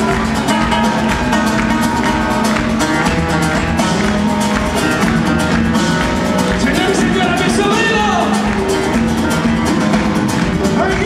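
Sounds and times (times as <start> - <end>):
live band playing flamenco rumba: 0.0 - 11.0.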